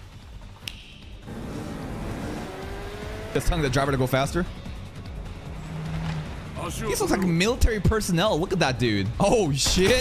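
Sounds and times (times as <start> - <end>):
short sharp click: 0.6 - 1.1
car engine revving: 1.3 - 7.4.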